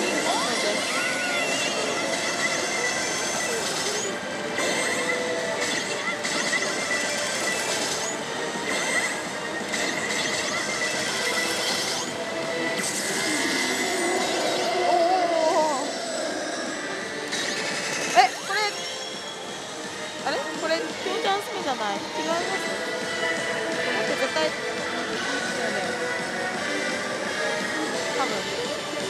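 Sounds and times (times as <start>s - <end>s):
slot machine music and effects: 0.0s - 15.1s, 15.8s - 29.0s
pachinko parlour din: 0.0s - 29.0s.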